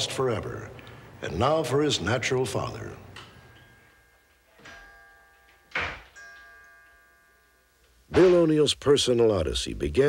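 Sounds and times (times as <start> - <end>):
soft chime ringing: 2.6 - 8.6.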